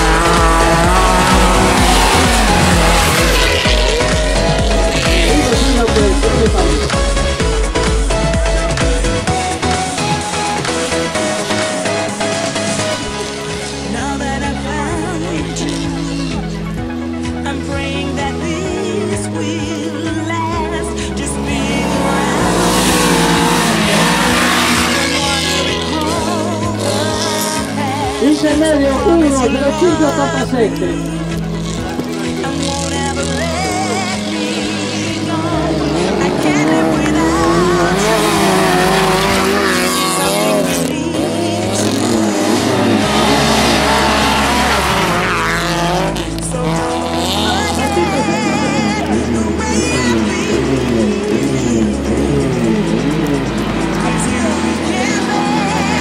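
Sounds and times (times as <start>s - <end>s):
car engine revving hard: 0.0s - 17.4s, 18.3s - 56.0s
backing music track: 0.0s - 56.0s
tyres spraying gravel: 20.2s - 56.0s.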